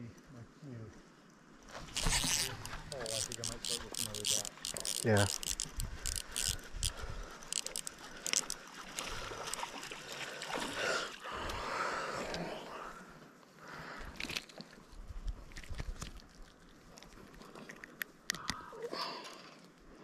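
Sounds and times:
water splashing: 0:01.7 - 0:12.2
fishing reel clicking and rattling: 0:01.9 - 0:09.7.

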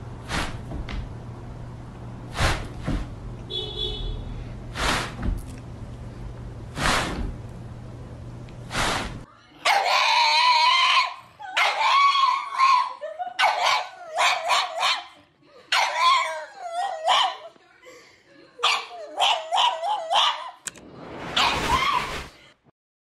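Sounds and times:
dog howling: 0:09.7 - 0:13.0
dog yipping: 0:09.7 - 0:15.2, 0:15.8 - 0:17.5, 0:18.6 - 0:20.6.

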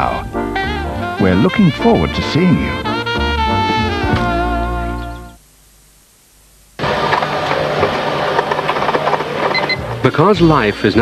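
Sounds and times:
printer clattering: 0:06.8 - 0:10.4.

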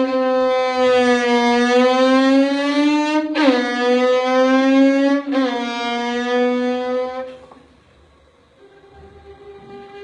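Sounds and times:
violin long bowed note: 0:08.5 - 0:10.0.

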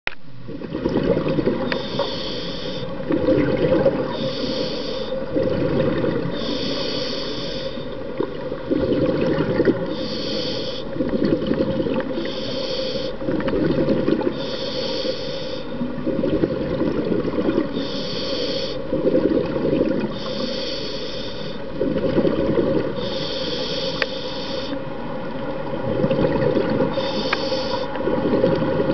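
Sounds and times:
bubbly exhale rumble: 0:00.6 - 0:01.7, 0:03.0 - 0:04.4, 0:05.2 - 0:06.5, 0:08.2 - 0:10.0, 0:13.2 - 0:14.4, 0:15.7 - 0:17.8, 0:18.8 - 0:20.2, 0:21.7 - 0:23.1, 0:25.7 - 0:27.3, 0:28.0 - 0:28.9
hissing regulator inhale: 0:01.6 - 0:03.0, 0:04.1 - 0:05.3, 0:06.3 - 0:08.0, 0:09.9 - 0:11.0, 0:12.1 - 0:13.2, 0:14.3 - 0:15.9, 0:17.7 - 0:18.9, 0:20.1 - 0:21.8, 0:22.9 - 0:24.8, 0:26.9 - 0:28.0.

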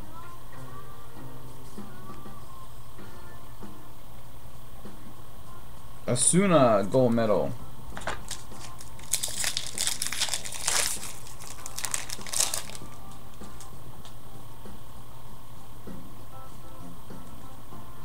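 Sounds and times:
plastic wrapper crinkling: 0:08.0 - 0:13.7.

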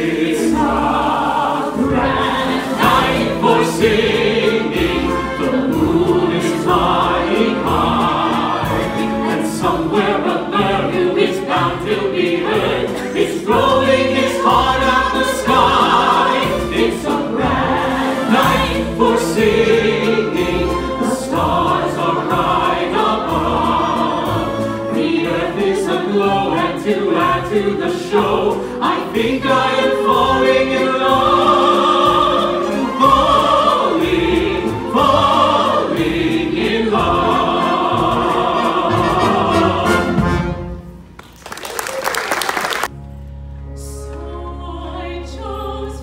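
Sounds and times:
opera singers singing together: 0:00.0 - 0:40.6, 0:43.8 - 0:46.0
small orchestra playing: 0:00.0 - 0:41.3, 0:42.6 - 0:46.0.

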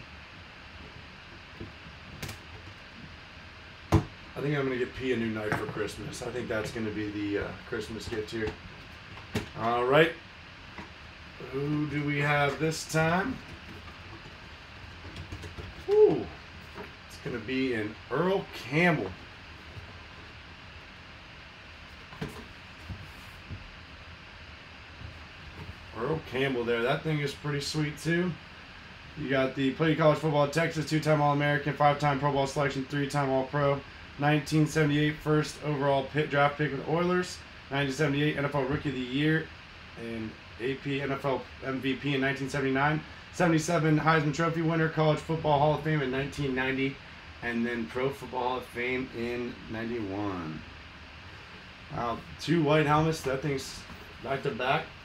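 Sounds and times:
room hiss: 0:00.0 - 0:55.0.

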